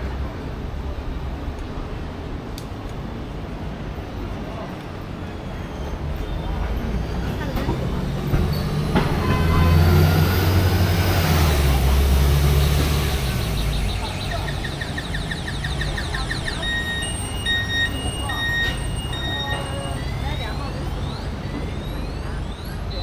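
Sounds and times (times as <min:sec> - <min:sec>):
bus engine rumble: 0:00.0 - 0:23.0
repeating electronic beep: 0:13.0 - 0:23.0.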